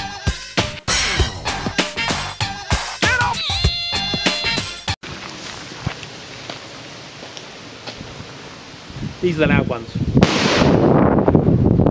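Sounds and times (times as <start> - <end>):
outdoor background hiss: 5.0 - 11.6.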